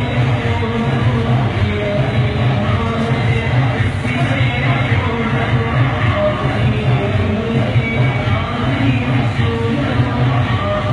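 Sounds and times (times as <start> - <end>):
music with strong bass: 0.0 - 10.9.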